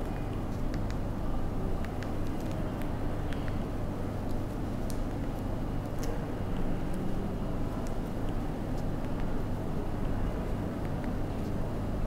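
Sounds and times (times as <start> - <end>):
low room hum and rumble: 0.0 - 12.0.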